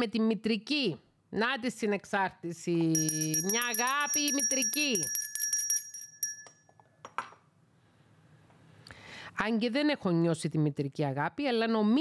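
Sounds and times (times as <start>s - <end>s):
small hand bell ringing: 2.9s - 6.8s.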